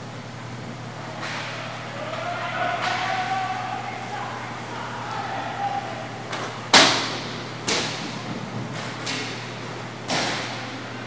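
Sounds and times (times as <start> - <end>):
hockey sticks striking puck: 1.2 - 4.2, 5.1 - 10.8.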